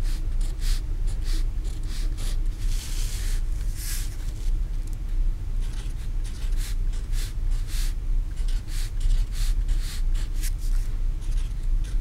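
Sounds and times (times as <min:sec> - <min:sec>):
marker scratching on paper: 0:00.0 - 0:04.5, 0:05.6 - 0:12.0
steady low hum: 0:00.0 - 0:12.0.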